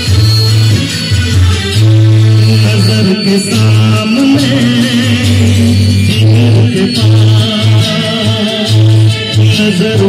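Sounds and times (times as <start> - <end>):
loud amplified music with bass: 0.0 - 10.0
man singing into microphone: 2.4 - 10.0.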